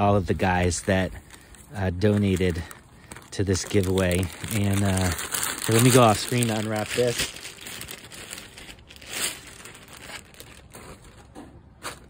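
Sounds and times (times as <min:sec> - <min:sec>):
wrapping crinkling and tearing: 0:00.7 - 0:12.0.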